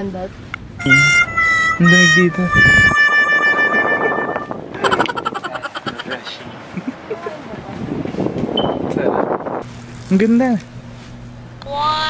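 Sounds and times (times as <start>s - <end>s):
low steady hum: 0.0s - 7.5s
rustling buffeting on microphone: 2.6s - 11.5s.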